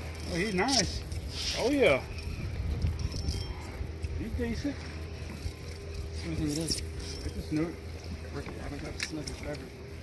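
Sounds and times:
wind buffeting microphone: 0:00.0 - 0:08.6.

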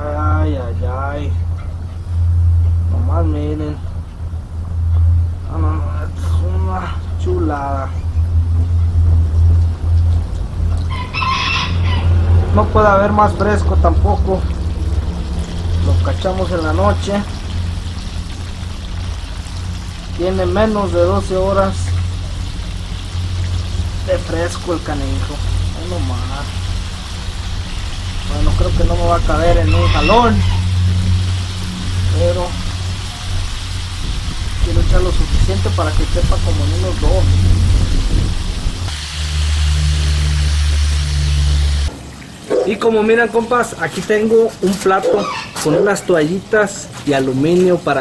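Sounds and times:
low steady rumble: 0:00.0 - 0:42.3
gas burner hum: 0:11.7 - 0:29.7, 0:30.6 - 0:42.0
fish frying in hot oil: 0:13.5 - 0:44.9.

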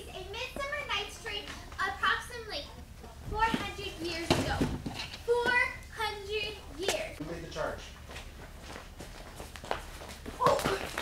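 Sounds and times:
footsteps on stage floor: 0:08.0 - 0:11.0.

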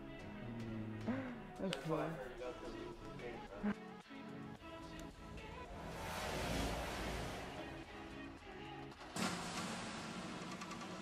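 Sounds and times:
noisy drone: 0:05.4 - 0:08.4.

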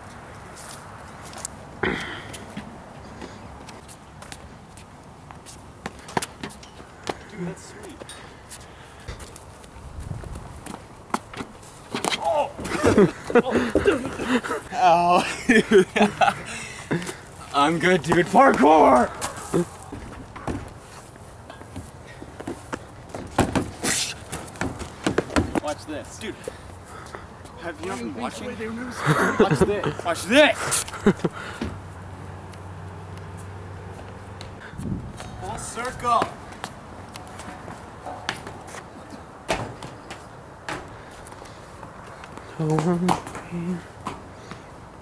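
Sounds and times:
person laughing or shouting: 0:12.2 - 0:17.1, 0:18.6 - 0:19.8, 0:28.8 - 0:31.4
footsteps and knocks on climbing frame: 0:17.0 - 0:25.8, 0:33.9 - 0:44.6
shoes landing on tables and concrete: 0:21.7 - 0:25.7, 0:39.4 - 0:41.0, 0:42.3 - 0:44.6.

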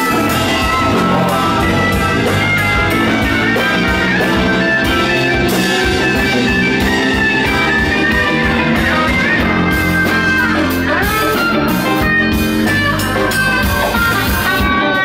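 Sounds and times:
guitar bending notes: 0:00.0 - 0:15.0
rock band playing: 0:00.0 - 0:15.0.

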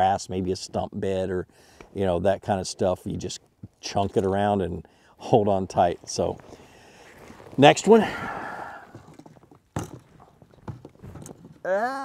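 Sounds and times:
clothing and gear rustling: 0:05.9 - 0:11.6.

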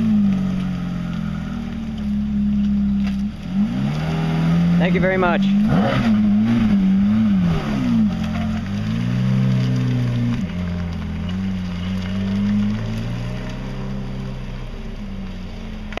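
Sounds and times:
car engine pulling away: 0:00.0 - 0:16.0.

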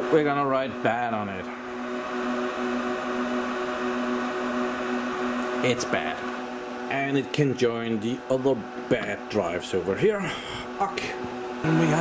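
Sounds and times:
server cooling fans whirring: 0:00.0 - 0:12.0.

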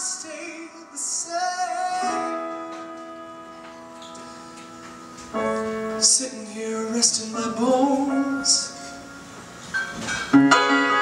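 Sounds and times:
man singing: 0:00.0 - 0:03.0, 0:05.8 - 0:09.0.

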